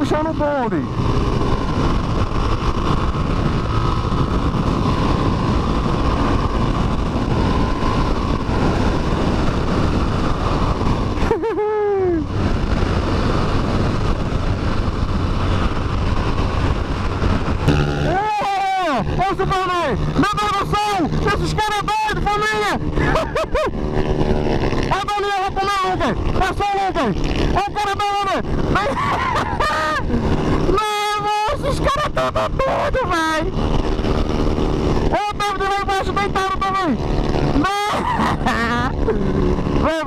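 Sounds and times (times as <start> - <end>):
motorcycle engine: 0.0 - 40.0
rushing wind noise: 0.0 - 40.0
rising and falling pitched sounds: 17.6 - 25.8.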